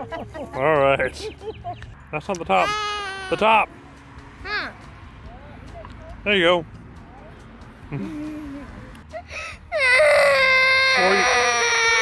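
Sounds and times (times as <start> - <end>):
girl crying: 2.6 - 3.4, 9.1 - 12.0.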